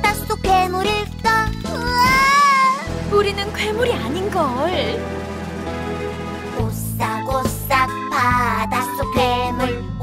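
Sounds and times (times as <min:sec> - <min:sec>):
children's song music: 0:00.0 - 0:10.0
high cartoon voice cry: 0:01.8 - 0:02.9.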